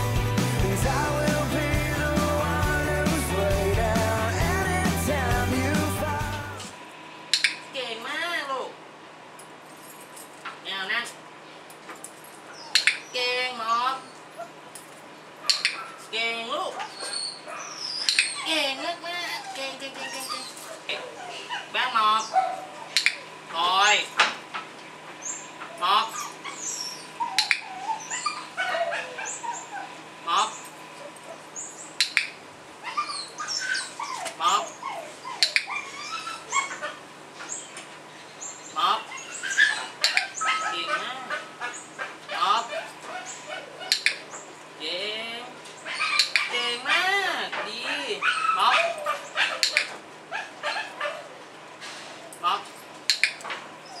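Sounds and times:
birds chirping: 0.0s - 6.6s, 16.9s - 24.2s, 24.8s - 44.7s
sharp clicks: 7.3s - 7.6s, 23.0s - 23.2s, 32.0s - 32.4s, 43.9s - 44.2s, 53.1s - 53.6s
puppy crying: 16.7s - 24.0s, 25.6s - 31.6s, 32.8s - 37.1s, 38.7s - 44.2s, 45.8s - 51.4s, 53.2s - 54.0s.

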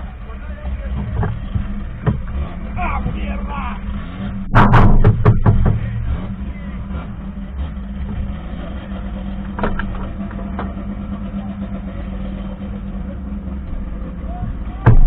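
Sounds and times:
race car engine running: 0.0s - 15.0s.

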